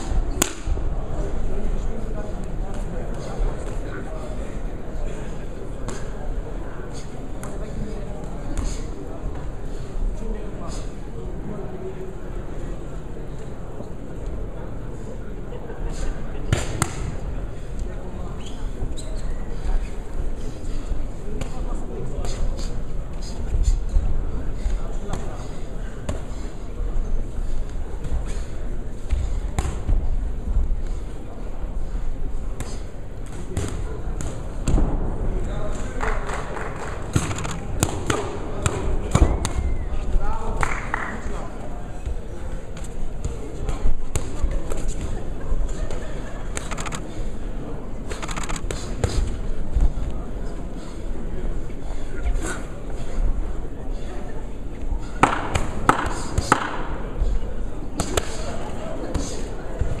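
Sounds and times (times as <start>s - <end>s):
crowd voices: 0.0s - 60.0s.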